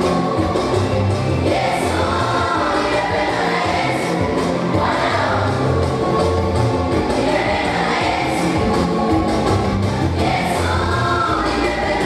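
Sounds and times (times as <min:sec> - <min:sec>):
choir singing gospel: 0:00.0 - 0:12.0
musical backing with bass: 0:00.0 - 0:12.0.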